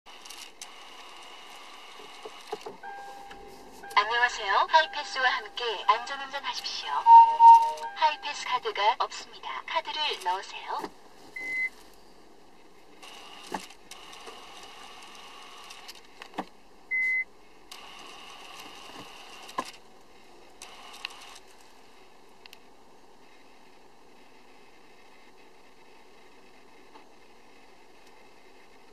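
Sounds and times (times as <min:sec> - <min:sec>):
car cabin hum: 0:02.7 - 0:11.0
short electronic beep: 0:02.8 - 0:04.0, 0:06.9 - 0:08.3
steady electronic tone: 0:02.8 - 0:08.6.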